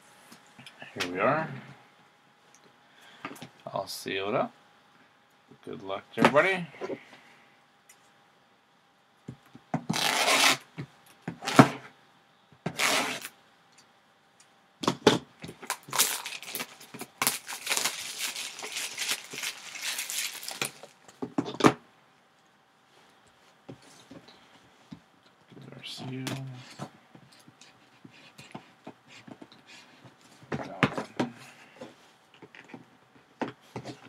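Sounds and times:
plastic shrink wrap crinkling: 15.6s - 21.1s.

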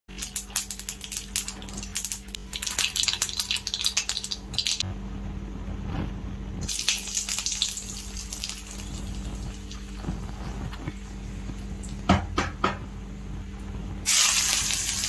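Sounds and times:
hot oil sizzling and crackling: 0.1s - 4.8s, 6.6s - 12.3s, 14.0s - 15.0s
steady low hum: 0.1s - 15.0s.

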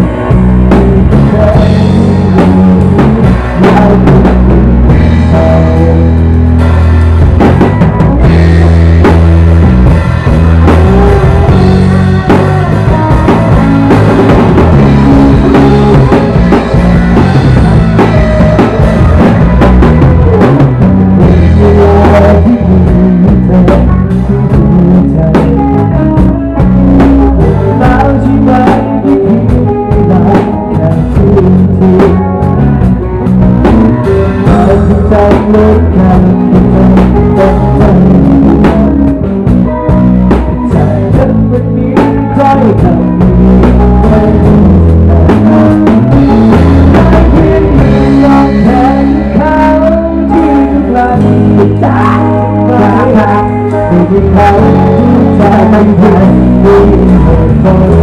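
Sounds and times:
band playing pop-rock song: 0.0s - 58.0s
bass guitar: 0.0s - 58.0s
drum kit with cymbals: 0.0s - 58.0s
electric guitar: 0.0s - 58.0s
person singing: 0.0s - 58.0s.

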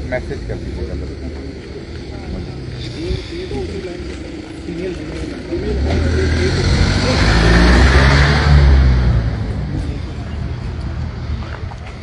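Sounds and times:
vehicle driving past: 2.4s - 12.0s.

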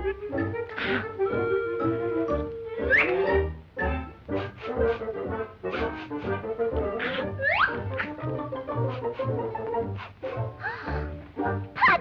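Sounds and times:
orchestral cartoon music with brass: 0.0s - 12.0s.

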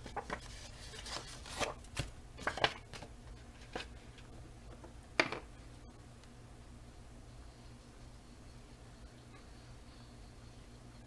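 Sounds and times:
paper rustling: 0.0s - 4.2s.

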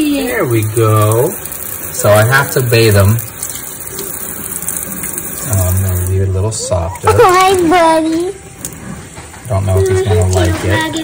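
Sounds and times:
tap water running into a sink: 0.0s - 11.0s.

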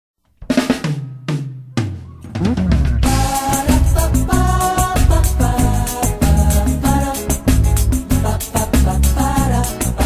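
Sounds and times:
drum kit hits: 0.4s - 8.2s
bass notes: 2.0s - 10.0s.

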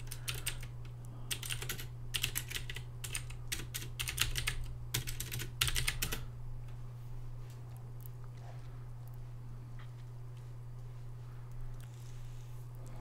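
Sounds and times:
keyboard typing: 0.0s - 6.3s
steady low hum: 0.0s - 13.0s.

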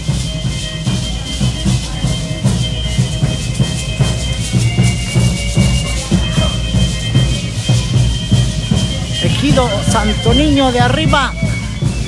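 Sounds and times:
drum beat: 0.0s - 12.0s
violin melody: 0.0s - 12.0s.

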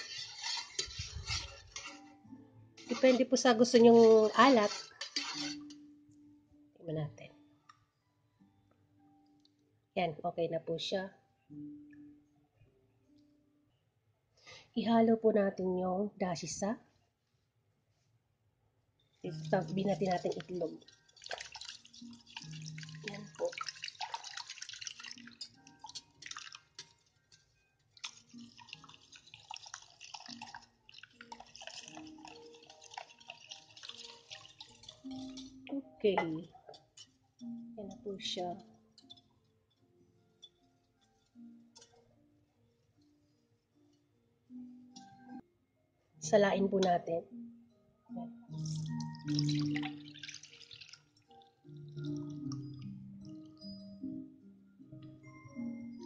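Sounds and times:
whisk swishing against glass: 0.0s - 2.1s, 2.8s - 5.8s
background music: 0.0s - 17.2s, 18.7s - 56.0s
liquid splashing into bowl: 19.3s - 27.0s, 28.0s - 35.6s, 48.6s - 52.8s.

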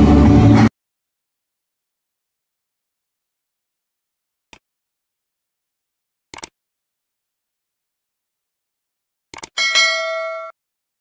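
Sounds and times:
quick clicks: 6.3s - 6.6s, 9.3s - 9.6s
bright bell ding: 9.6s - 10.6s.

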